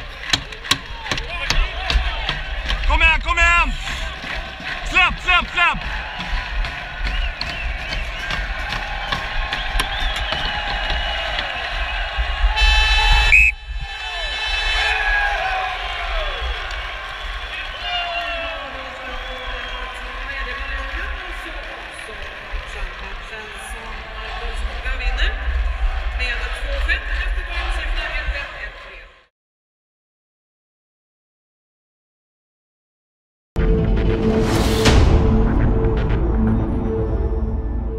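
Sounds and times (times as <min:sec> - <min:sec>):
crowd noise: 0:00.0 - 0:29.3
people shouting: 0:00.7 - 0:16.6
arena horn: 0:12.6 - 0:13.6.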